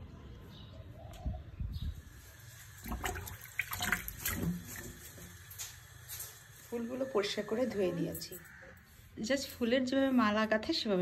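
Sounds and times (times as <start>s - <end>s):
water splashing in a bowl: 2.5s - 5.4s.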